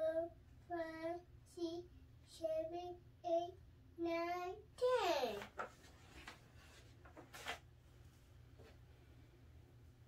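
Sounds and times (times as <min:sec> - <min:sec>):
child counting aloud: 0:00.0 - 0:05.5.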